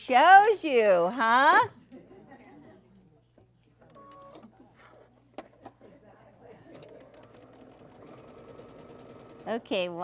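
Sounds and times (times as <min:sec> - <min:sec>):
sewing machine stitching: 0:06.7 - 0:09.9.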